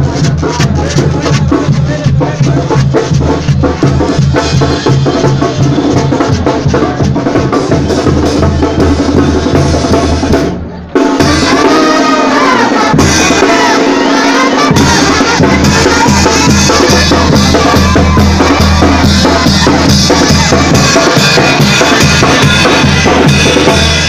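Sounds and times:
bass drum: 0.0s - 10.6s, 14.7s - 24.0s
snare drums: 0.0s - 24.0s
brass band playing: 8.0s - 24.0s.

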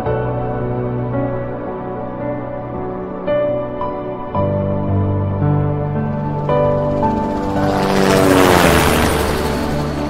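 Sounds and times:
background music: 0.0s - 10.0s
drone propellers whining: 5.9s - 10.0s.

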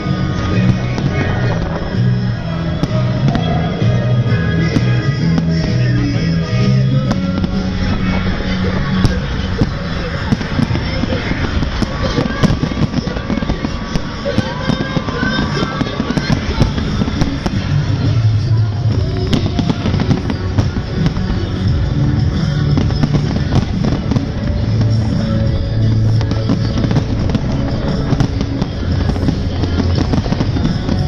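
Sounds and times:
fireworks bangs and crackles: 0.0s - 31.0s
music playing: 0.0s - 31.0s.

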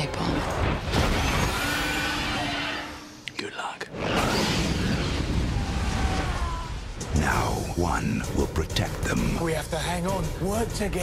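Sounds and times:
fire rushing: 3.9s - 7.7s.

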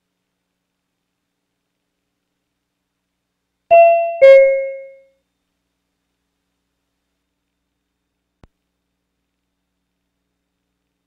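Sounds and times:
two-tone ding-dong chime: 3.7s - 5.0s.

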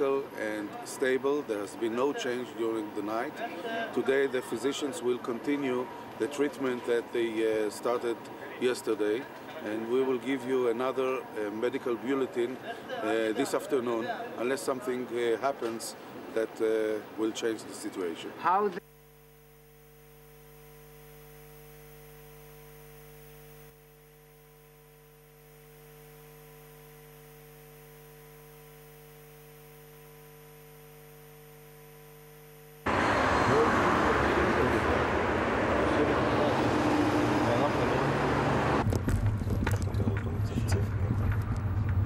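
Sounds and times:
faint steady hum: 0.0s - 36.6s
outdoor noise with vehicle rumble: 32.9s - 42.0s.

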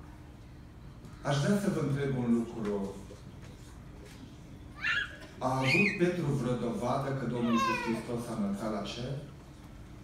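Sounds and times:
child squealing: 4.8s - 6.1s, 7.3s - 8.1s.

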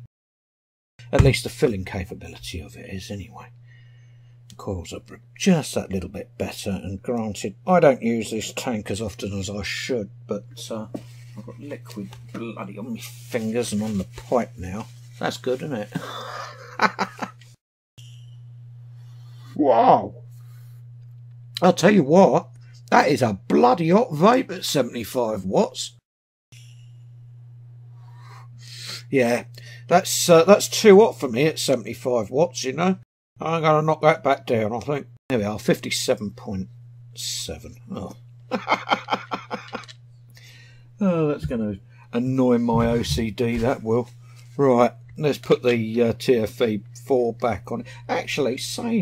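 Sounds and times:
steady low hum: 1.0s - 25.9s, 26.6s - 49.0s
man laughing: 15.9s - 17.4s, 38.5s - 39.9s.

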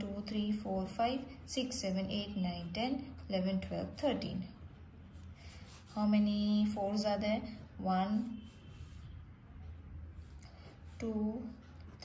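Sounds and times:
low steady hum: 0.0s - 12.0s
pen scratching on paper: 0.8s - 9.2s.

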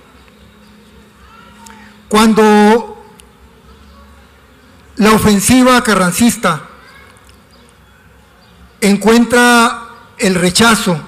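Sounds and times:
man speaking: 2.1s - 3.1s, 5.0s - 6.7s, 8.8s - 11.0s.

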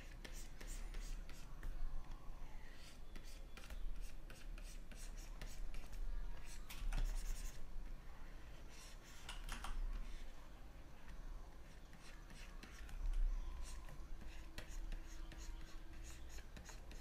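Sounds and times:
stylus scratching on drawing tablet: 0.0s - 1.8s, 2.6s - 7.7s, 11.6s - 17.0s.

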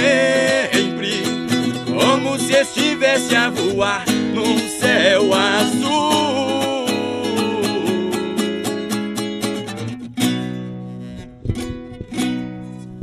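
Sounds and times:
strummed guitars in steady rhythm: 0.0s - 13.0s.

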